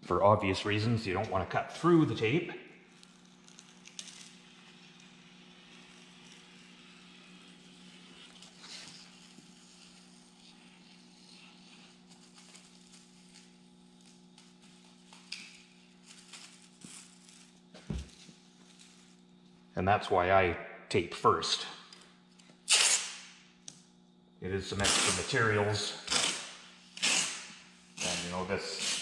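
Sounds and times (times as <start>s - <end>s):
low electrical hum: 0.0s - 29.0s.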